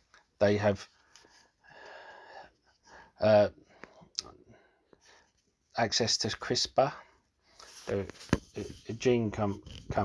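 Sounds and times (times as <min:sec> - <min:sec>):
man's wheezy in-breath: 0:01.6 - 0:03.2.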